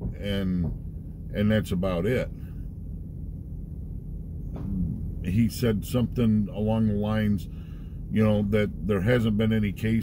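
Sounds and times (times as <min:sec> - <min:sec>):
van cabin rumble: 0:00.0 - 0:10.0
man's voice: 0:04.7 - 0:07.5, 0:08.1 - 0:10.0
short breath: 0:07.5 - 0:08.1.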